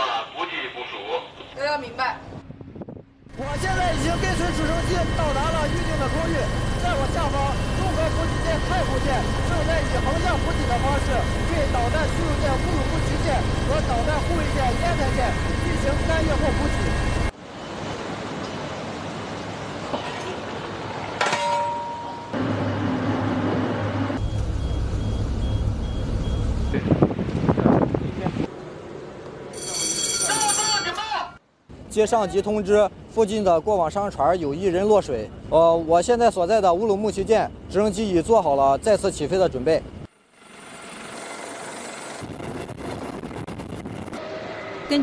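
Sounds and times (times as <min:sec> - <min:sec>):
low machinery hum: 0:02.4 - 0:17.3, 0:21.5 - 0:29.4
helicopter rotor and turbine noise: 0:03.2 - 0:17.4, 0:32.0 - 0:45.0.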